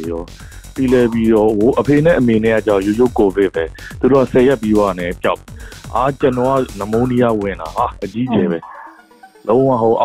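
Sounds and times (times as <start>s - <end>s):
man talking: 0.0s - 8.6s, 9.5s - 10.0s
faint background music: 0.0s - 10.0s.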